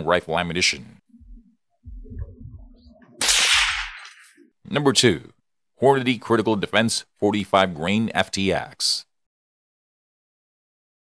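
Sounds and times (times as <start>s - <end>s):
low rumbling: 1.1s - 4.0s
whip-like whoosh: 1.9s - 4.3s.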